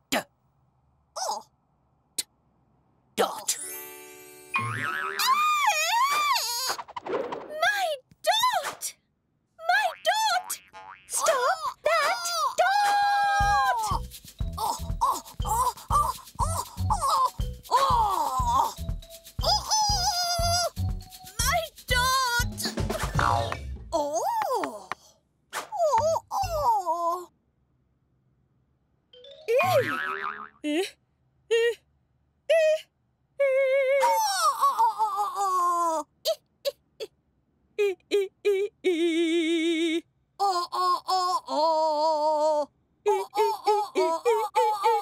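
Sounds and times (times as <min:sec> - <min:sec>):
cartoon springy boing: 0:09.9 - 0:11.3, 0:29.6 - 0:30.6
cartoon voices sing-song cries: 0:11.2 - 0:18.8, 0:19.4 - 0:20.7.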